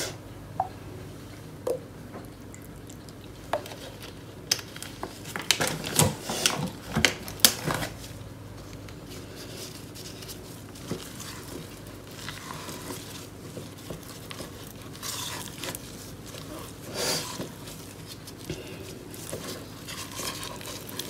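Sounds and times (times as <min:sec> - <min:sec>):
spatula scraping plastic jug: 0:19.2 - 0:21.0.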